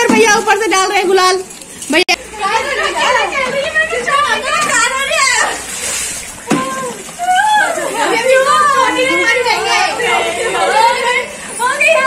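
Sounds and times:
voices chattering: 0:00.0 - 0:12.0.

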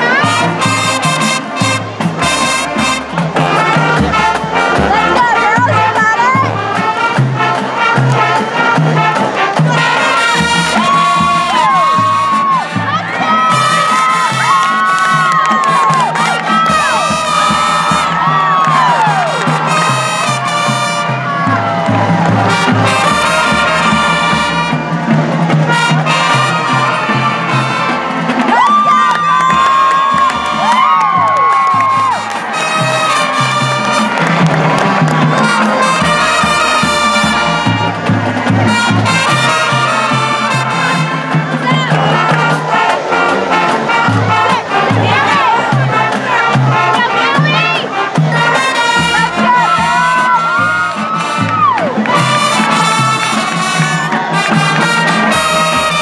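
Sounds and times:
crowd cheering and shouting: 0:00.0 - 0:56.0
marching band playing brass tune: 0:00.0 - 0:56.0
high shouts: 0:09.5 - 0:24.9, 0:25.9 - 0:56.0.

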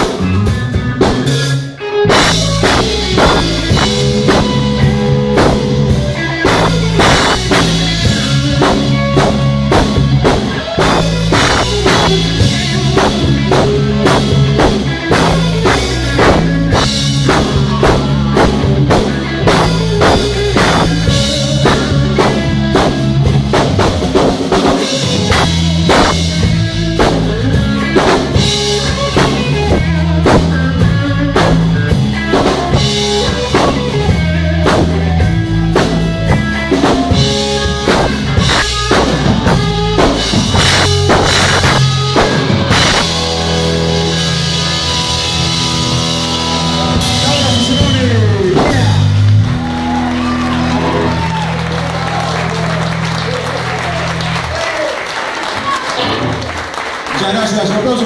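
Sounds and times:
drum kit beat: 0:00.0 - 0:57.2
electric bass: 0:00.0 - 0:58.0
electric guitar: 0:00.0 - 0:58.0.

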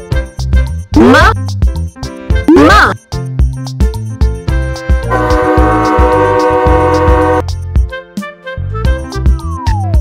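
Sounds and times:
children's music with drum beat: 0:00.0 - 0:10.0
cartoon train horn blast: 0:05.1 - 0:07.4.

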